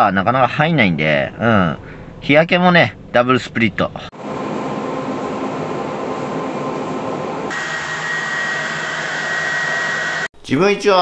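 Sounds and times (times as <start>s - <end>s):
high steady whine: 4.1s - 10.3s
hair dryer blowing: 4.2s - 10.3s.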